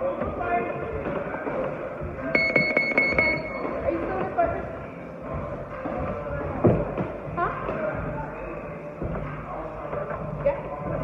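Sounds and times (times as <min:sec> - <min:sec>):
high-pitched electronic alarm tone: 0:02.3 - 0:03.9.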